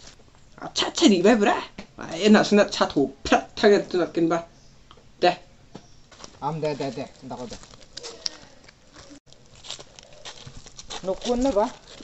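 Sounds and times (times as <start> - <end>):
faint outdoor background: 0.0 - 12.0
footsteps on dirt path: 6.1 - 12.0.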